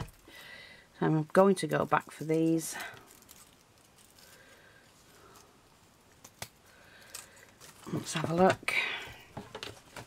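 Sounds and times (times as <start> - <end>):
handling paper flowers: 1.7 - 10.0.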